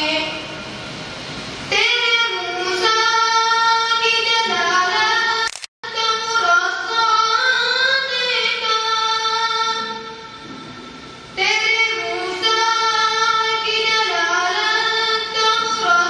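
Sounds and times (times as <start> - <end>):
boy singing into a microphone: 0.0 - 0.6, 1.7 - 10.3, 11.4 - 16.0.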